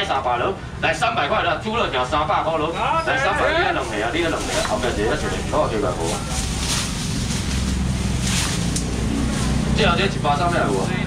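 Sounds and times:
low engine rumble: 0:00.0 - 0:11.0
plastic bag rustling: 0:03.8 - 0:08.8.

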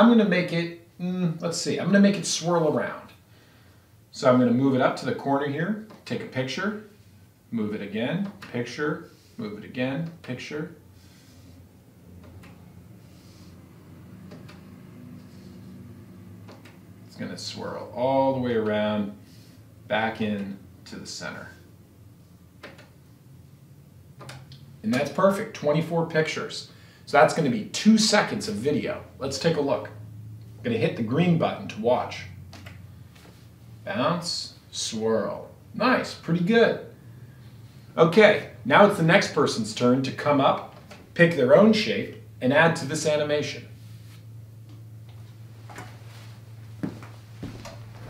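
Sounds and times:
faint low hum: 0:00.0 - 0:48.0.

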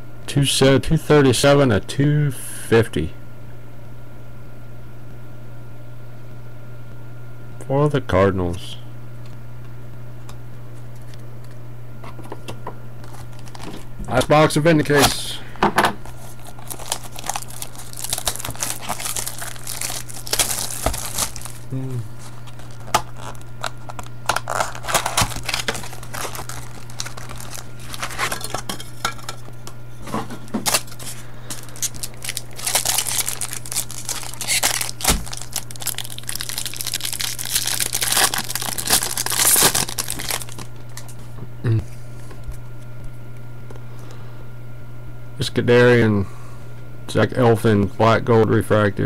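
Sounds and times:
steady low hum: 0:00.0 - 0:49.0
foil wrappers crinkling and tearing: 0:13.0 - 0:15.3, 0:16.0 - 0:41.2.

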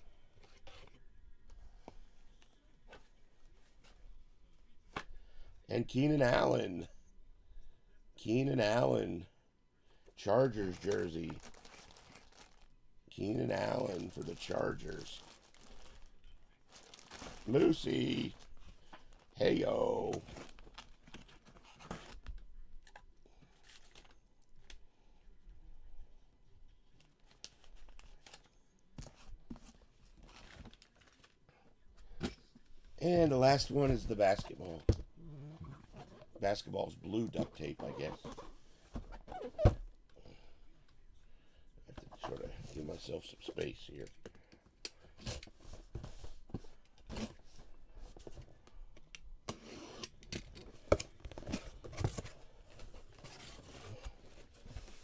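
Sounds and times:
cardboard boxes scraping and rustling: 0:51.4 - 0:55.0.

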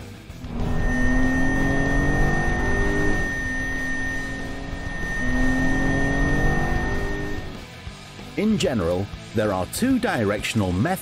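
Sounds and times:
car engine revving: 0:00.3 - 0:07.6
high-pitched brake squeal: 0:00.4 - 0:07.6.

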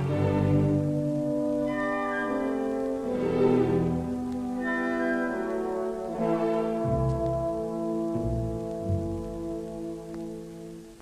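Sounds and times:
french horns holding notes: 0:00.0 - 0:11.0
symphony orchestra playing: 0:00.0 - 0:11.0.

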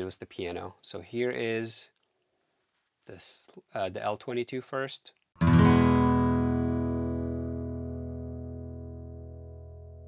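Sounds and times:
acoustic guitar chord ringing: 0:05.4 - 0:10.0.

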